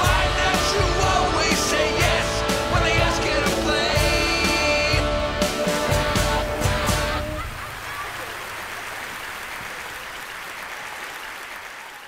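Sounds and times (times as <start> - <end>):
audience applause and cheering: 6.4 - 12.0.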